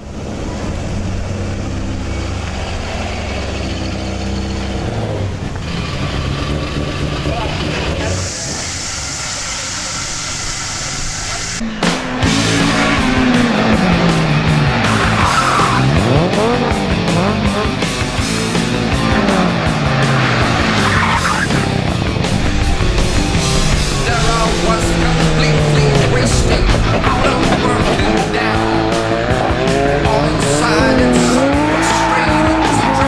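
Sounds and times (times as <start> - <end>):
racing car engine revving: 0.0 - 33.0
tyres squealing: 7.9 - 16.6, 18.0 - 21.9, 24.0 - 33.0.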